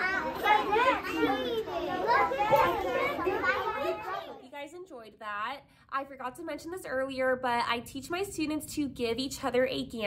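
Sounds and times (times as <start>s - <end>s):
children chattering: 0.0s - 4.5s.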